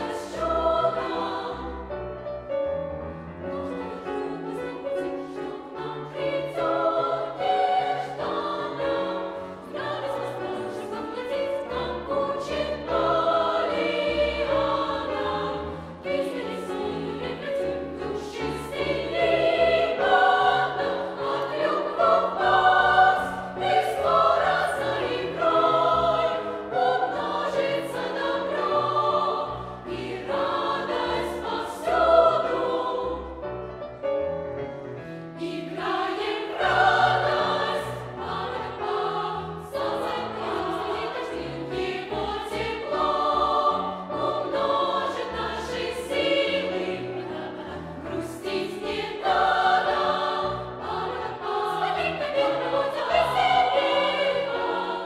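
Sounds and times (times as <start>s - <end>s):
youth choir singing: 0.0s - 2.0s, 3.6s - 33.5s, 35.4s - 55.0s
piano accompaniment: 0.0s - 55.0s.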